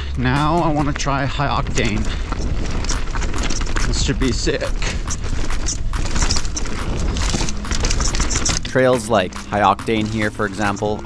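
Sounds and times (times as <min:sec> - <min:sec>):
bike clicks and knocks: 0:00.0 - 0:11.0
low rumble: 0:00.0 - 0:11.0
tyres rolling on dirt and stones: 0:00.0 - 0:11.0.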